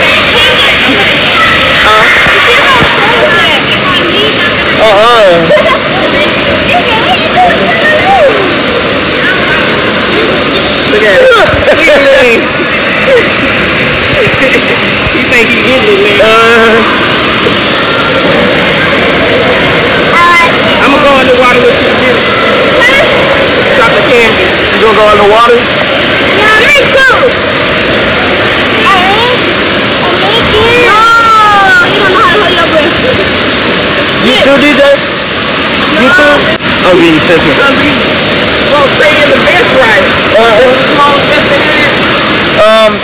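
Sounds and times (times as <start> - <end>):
voices calling and shouting: 0.0 - 43.0
water rushing and splashing: 0.0 - 43.0.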